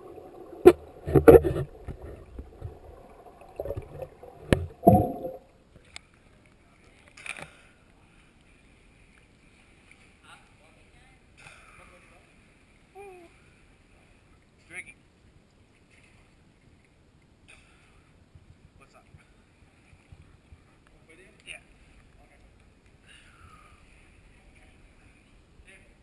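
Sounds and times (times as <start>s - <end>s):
muffled underwater bubbling: 0.0s - 5.5s
water splashes: 0.0s - 7.7s.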